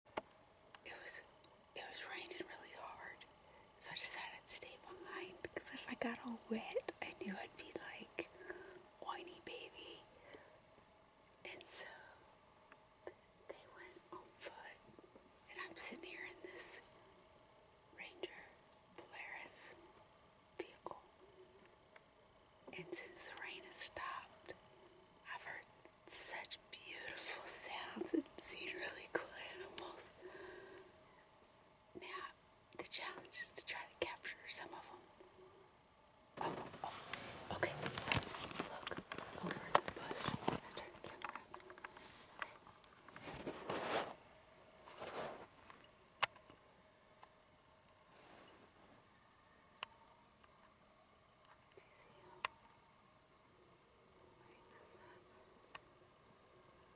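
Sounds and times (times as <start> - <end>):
woman whispering: 0.8 - 10.4, 11.4 - 12.2, 13.0 - 14.8, 15.5 - 16.9, 18.0 - 19.8, 20.6 - 21.5, 22.7 - 24.6, 25.2 - 30.8, 32.0 - 35.1, 36.4 - 42.5, 51.4 - 52.6, 54.2 - 55.5.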